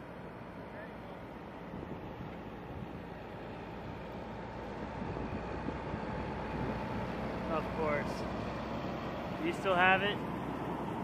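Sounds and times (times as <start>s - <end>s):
distant helicopter rotor drone: 0.0s - 11.0s
wind noise: 1.5s - 7.4s.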